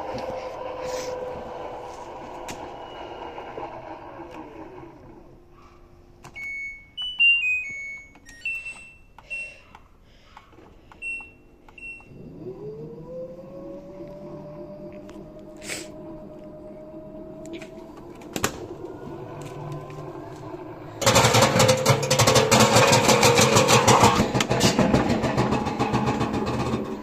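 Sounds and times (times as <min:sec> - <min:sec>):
washing machine motor whining: 0:00.0 - 0:05.7, 0:11.0 - 0:27.0
control panel beeps: 0:06.3 - 0:09.8, 0:11.0 - 0:12.2.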